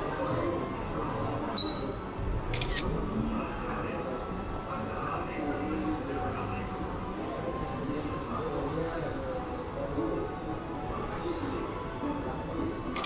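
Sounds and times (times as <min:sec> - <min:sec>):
faint music: 0:00.0 - 0:13.0.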